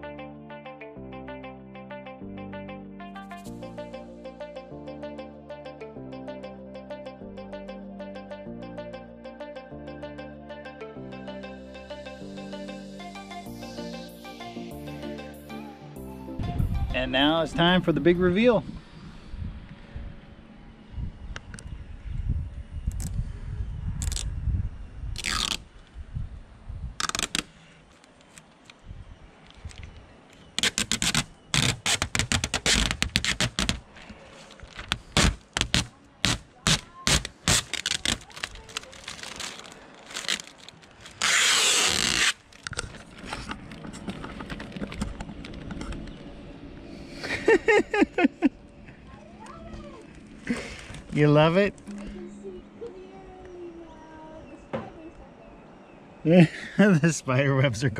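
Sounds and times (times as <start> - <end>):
plastic film tearing rip: 25.2 - 25.6, 30.6 - 33.8, 34.6 - 42.7
plastic film crackling: 30.6 - 42.7.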